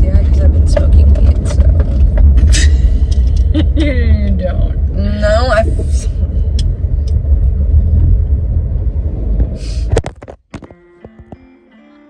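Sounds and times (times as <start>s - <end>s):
car driving rumble in cabin: 0.0s - 10.7s
faint guitar music: 10.6s - 12.0s.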